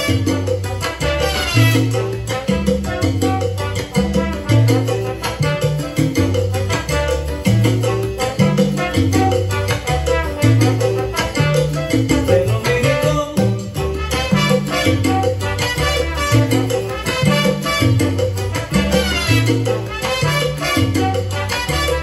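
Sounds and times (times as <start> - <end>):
bass line: 0.0 - 22.0
busy percussion: 0.0 - 22.0
salsa band music: 0.0 - 22.0.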